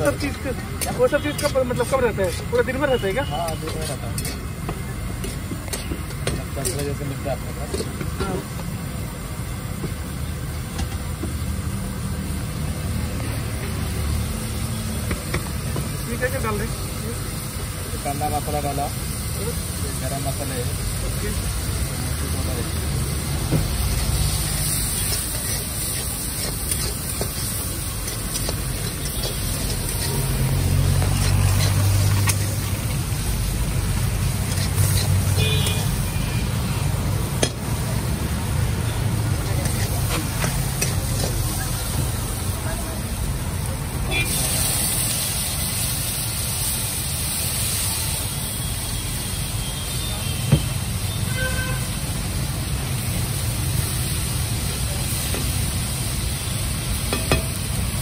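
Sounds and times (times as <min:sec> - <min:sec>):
background chatter: 0:00.0 - 0:12.0, 0:12.6 - 0:51.2, 0:51.9 - 0:58.0
noodles frying in a pan: 0:00.0 - 0:58.0
traffic rumble: 0:00.0 - 0:58.0.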